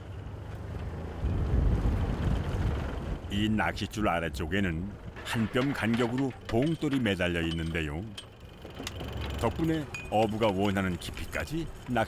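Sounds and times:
wind buffeting microphone: 0:01.1 - 0:06.7.

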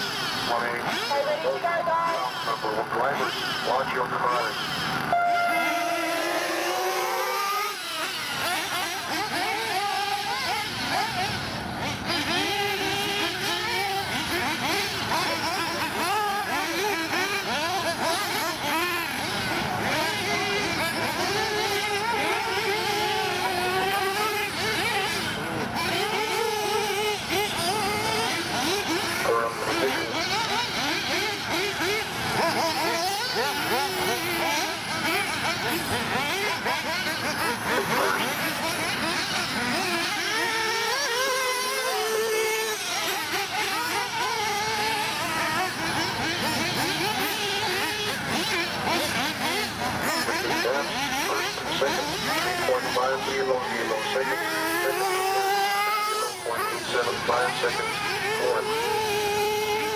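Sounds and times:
model car engines revving: 0:00.0 - 0:59.9.

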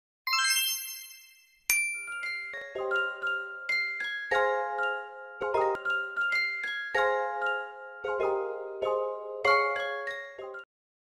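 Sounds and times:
bell-like chime dings: 0:00.3 - 0:05.1.

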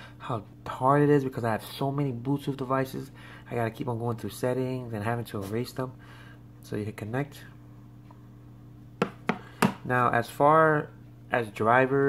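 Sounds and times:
low electrical hum: 0:00.0 - 0:12.0
phone set down on tabletop: 0:09.0 - 0:09.8.

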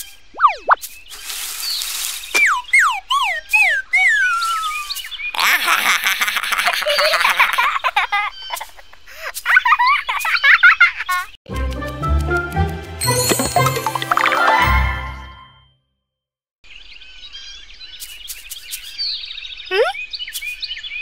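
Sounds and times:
cartoon falling whistles: 0:00.4 - 0:00.8, 0:02.4 - 0:05.0
high wavering squeaks: 0:00.4 - 0:00.9
fizzing wash: 0:01.1 - 0:02.4.

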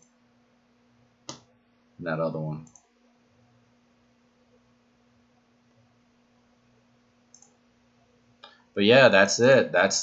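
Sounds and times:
faint steady hum: 0:00.0 - 0:10.0
computer mouse click: 0:02.6 - 0:02.9, 0:07.3 - 0:07.6.

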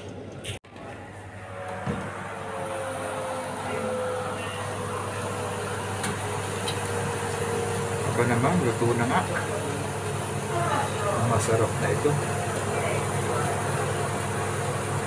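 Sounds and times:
oven humming: 0:00.0 - 0:15.0
food sizzling: 0:02.5 - 0:15.0.

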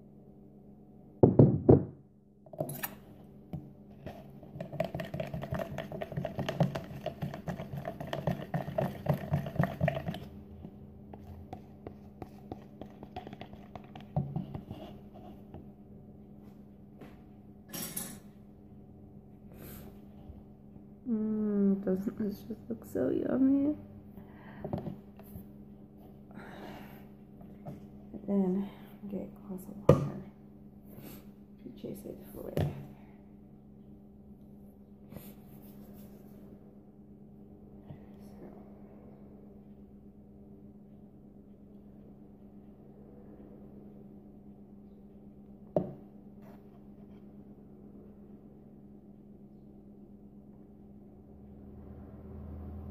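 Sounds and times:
faint low hum: 0:00.0 - 0:52.9.

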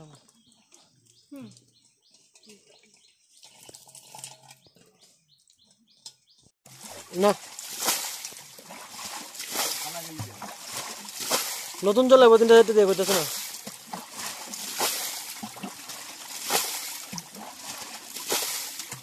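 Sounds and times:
muddy water sloshing and splashing: 0:06.7 - 0:19.0.

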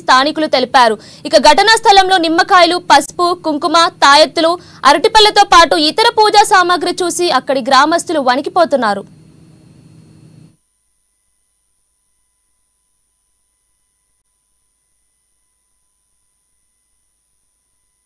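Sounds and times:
faint hum and hiss: 0:00.0 - 0:18.0.

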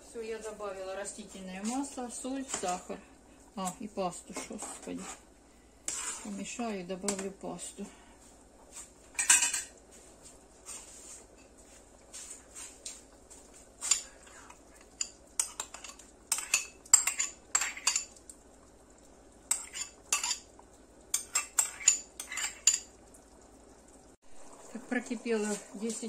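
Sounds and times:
spoon scraping ceramic bowl: 0:05.9 - 0:06.4, 0:13.8 - 0:18.1, 0:19.5 - 0:20.5, 0:21.2 - 0:22.9.

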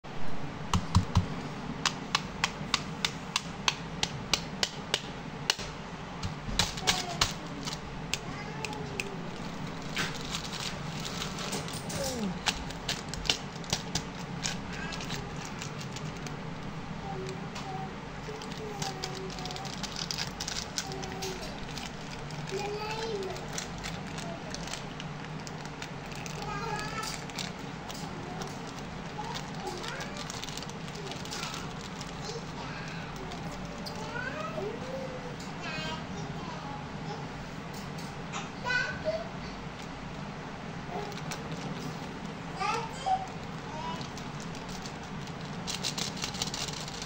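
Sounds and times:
plastic packaging crinkling: 0:06.3 - 0:34.3, 0:40.9 - 0:47.0.

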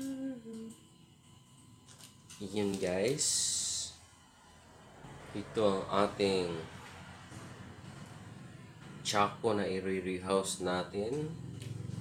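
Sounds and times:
person humming: 0:00.0 - 0:00.8.

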